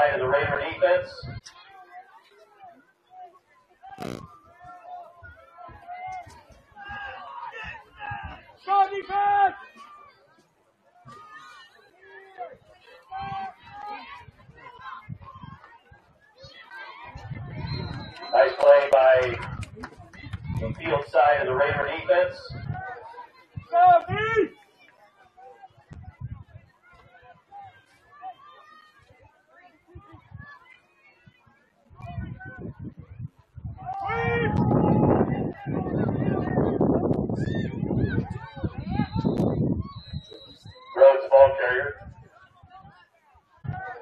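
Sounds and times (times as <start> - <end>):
loud shouting voices: 0.0 - 1.4, 3.9 - 9.9, 12.2 - 15.7, 16.5 - 19.6, 20.4 - 24.6, 33.6 - 42.2, 43.6 - 44.0.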